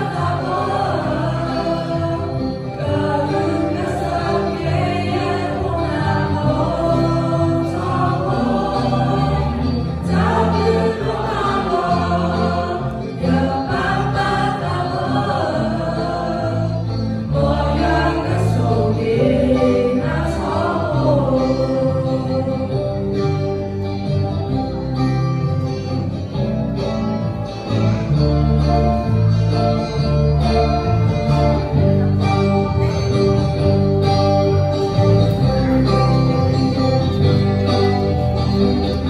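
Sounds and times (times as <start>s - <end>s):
mixed choir singing a hymn: 0.0s - 22.9s.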